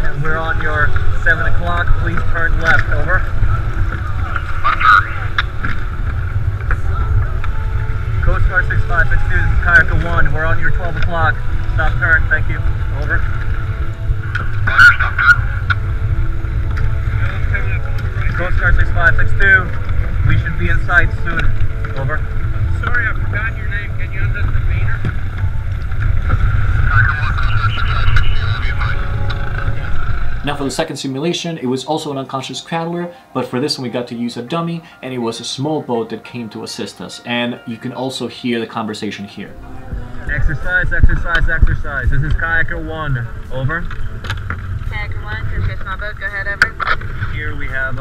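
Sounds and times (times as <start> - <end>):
wind buffeting microphone: 0.0 - 30.8, 39.6 - 48.0
muffled voice over radio: 4.2 - 5.5, 14.7 - 15.7, 26.8 - 29.3.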